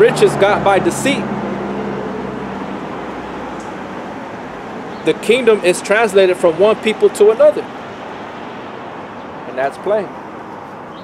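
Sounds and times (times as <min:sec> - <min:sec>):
passing vehicle engine hum: 0:00.0 - 0:11.0
road noise rush: 0:00.0 - 0:11.0.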